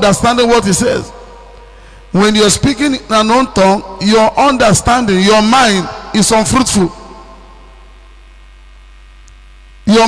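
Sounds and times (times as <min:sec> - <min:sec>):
man speaking: 0:00.0 - 0:01.3, 0:02.1 - 0:07.4
electrical mains hum: 0:00.0 - 0:10.0.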